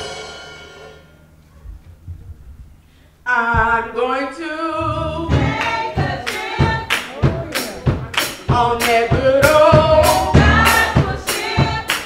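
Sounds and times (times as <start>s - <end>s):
woman singing into a microphone: 3.3s - 6.9s
voices singing along: 3.3s - 12.0s
steady percussive beat: 4.8s - 12.0s.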